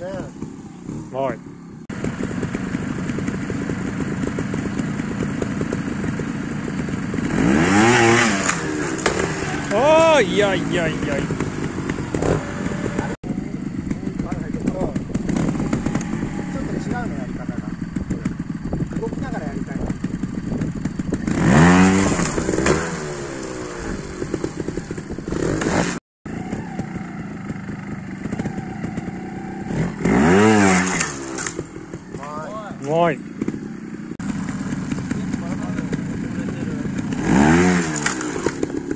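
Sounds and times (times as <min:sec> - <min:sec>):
motorcycle engine revving: 0:00.0 - 0:38.9.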